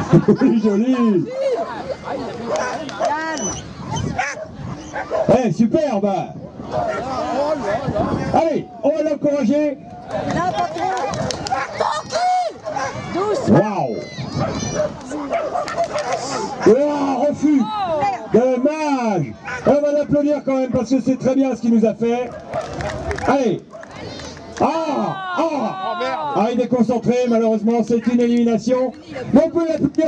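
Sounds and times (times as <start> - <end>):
dog barking: 2.5 - 3.2, 3.9 - 5.4, 6.7 - 7.2, 11.0 - 12.0, 12.6 - 13.0, 14.4 - 16.8, 19.4 - 19.8.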